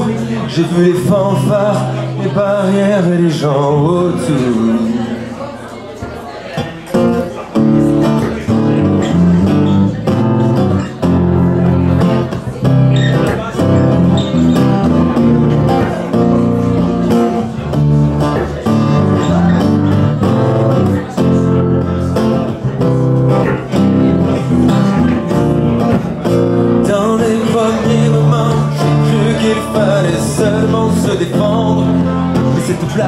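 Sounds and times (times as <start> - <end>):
acoustic guitars strumming: 0.0 - 33.0
low bass line: 7.6 - 33.0.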